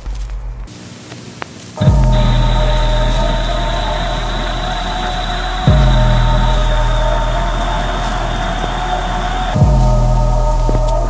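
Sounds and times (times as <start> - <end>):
hiss: 0.7 - 11.0
deep sub-bass note: 1.8 - 11.0
sustained synth tones: 1.8 - 11.0.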